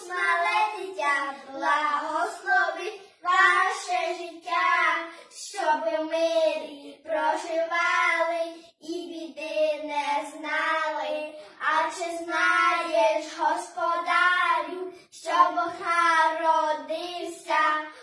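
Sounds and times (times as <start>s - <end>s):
children singing unaccompanied: 0.0s - 18.0s.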